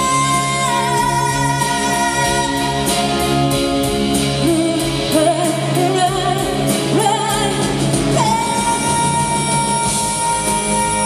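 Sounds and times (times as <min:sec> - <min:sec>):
woman singing with vibrato: 0:00.0 - 0:03.4, 0:04.4 - 0:11.0.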